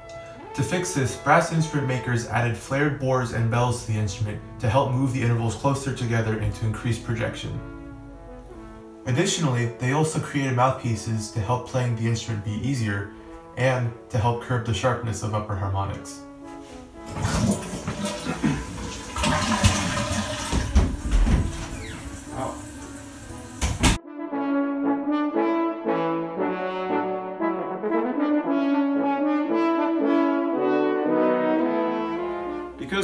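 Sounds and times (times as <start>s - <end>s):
brass melody: 0.0s - 33.0s
toilet flushing: 17.0s - 24.0s
person laughing: 18.0s - 18.8s.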